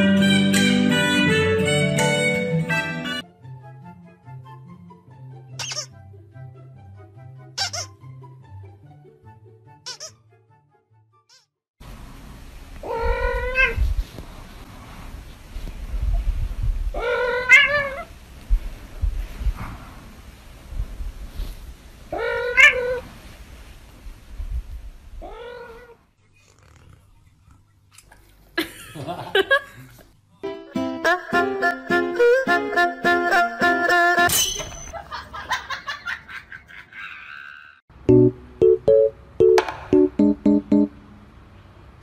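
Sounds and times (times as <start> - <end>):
squeaky plush toy squeaking: 5.6 - 6.0, 7.6 - 8.0, 9.8 - 10.2
cat meowing: 7.6 - 7.9, 12.8 - 13.8, 17.0 - 18.1, 22.1 - 23.0, 25.2 - 26.0
background music with bass line: 38.0 - 41.0.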